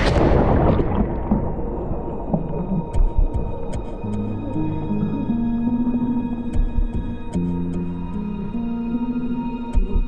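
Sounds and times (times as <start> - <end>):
low thuds: 0.0 - 4.2.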